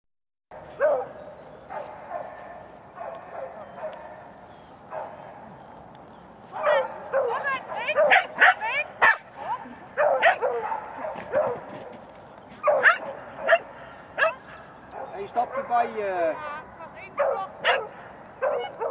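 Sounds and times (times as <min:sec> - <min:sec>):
dog barking and yipping: 0:00.8 - 0:01.1, 0:04.9 - 0:05.5, 0:06.5 - 0:09.3, 0:10.0 - 0:11.9, 0:12.6 - 0:15.9, 0:17.2 - 0:18.9.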